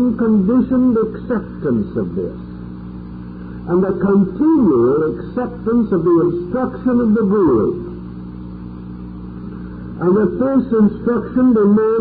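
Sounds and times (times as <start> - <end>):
faint tape hiss: 0.0 - 12.0
low hum: 0.0 - 12.0.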